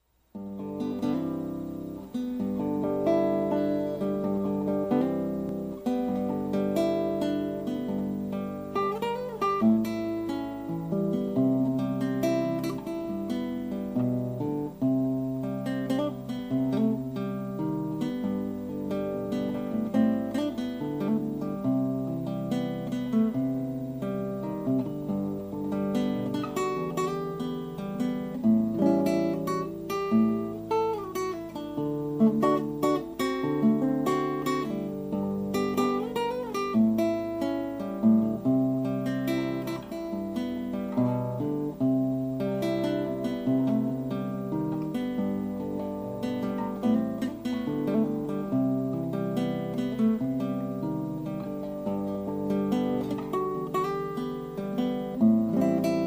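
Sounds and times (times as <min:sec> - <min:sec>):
acoustic guitar melody: 0:00.0 - 0:56.0.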